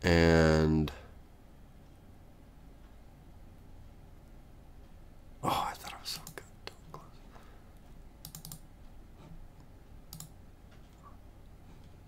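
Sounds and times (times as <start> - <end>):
breathy whisper: 5.4 - 7.7
keyboard and mouse clicks: 6.2 - 6.5, 8.2 - 11.0.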